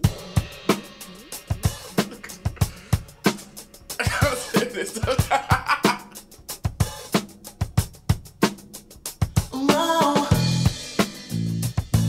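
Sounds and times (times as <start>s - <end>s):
drum kit playing a steady beat: 0.0s - 12.0s.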